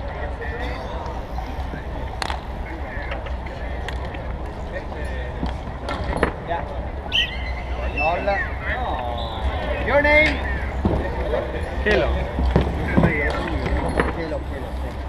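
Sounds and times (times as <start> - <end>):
spectators chattering: 0.0 - 15.0.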